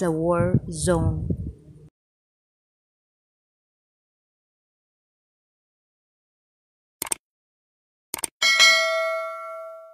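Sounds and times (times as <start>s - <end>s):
double clicks: 7.0s - 7.2s, 8.1s - 8.3s
notification bell ding: 8.4s - 9.9s.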